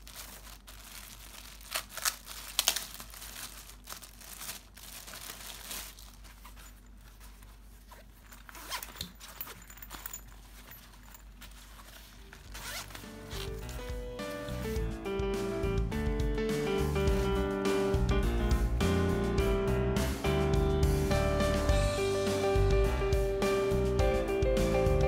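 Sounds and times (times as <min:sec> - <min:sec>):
plastic bag rustling and crinkling: 0:00.0 - 0:14.7.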